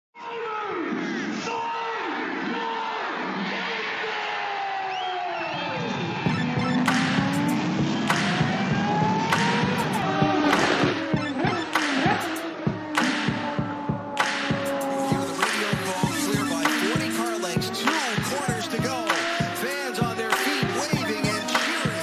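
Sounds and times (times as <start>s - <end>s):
race cars passing at speed: 5.4s - 22.0s
engine note climbing in pitch: 5.8s - 22.0s
music with sharp drum hits: 6.3s - 22.0s.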